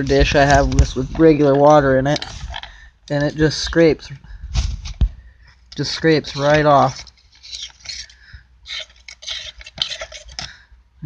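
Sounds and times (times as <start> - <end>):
plastic scraper scraping metal: 6.2 - 10.5.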